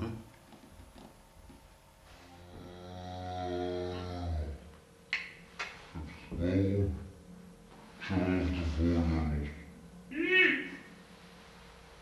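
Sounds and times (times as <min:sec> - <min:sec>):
low moo-like tone: 0:02.2 - 0:04.7.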